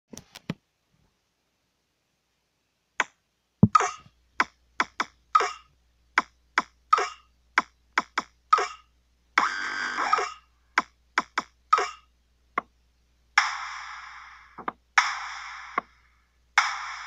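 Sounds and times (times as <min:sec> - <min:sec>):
faint low hum: 0:00.1 - 0:17.0.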